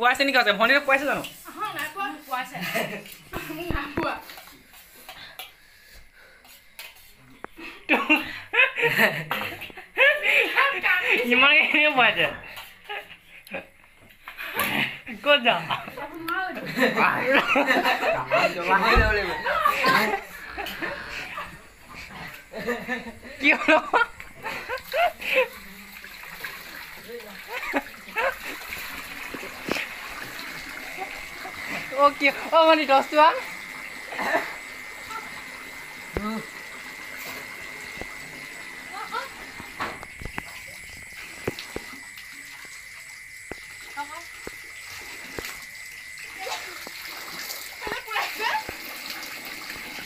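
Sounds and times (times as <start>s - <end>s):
water splashing over metal basins: 0.0s - 50.0s
voices: 14.6s - 26.2s, 47.8s - 48.8s.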